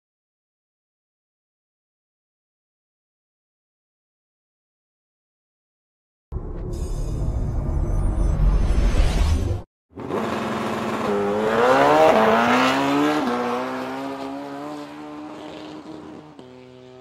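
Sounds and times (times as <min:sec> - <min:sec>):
low music sting: 0:06.4 - 0:09.6
vehicle engine accelerating: 0:06.4 - 0:17.0.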